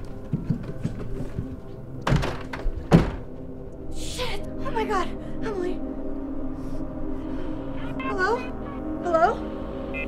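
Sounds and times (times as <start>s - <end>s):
tense horror film score: 0.0s - 10.0s.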